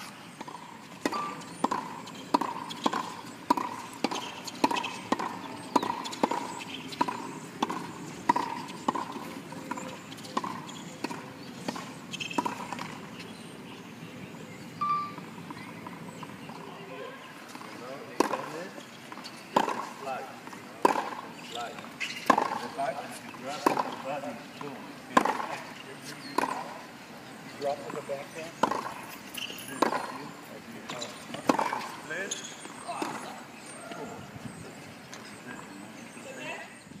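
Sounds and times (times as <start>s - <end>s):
tennis balls knocking: 0.4s - 13.2s, 17.5s - 26.8s, 27.6s - 34.0s
faint distant voices: 0.5s - 37.0s.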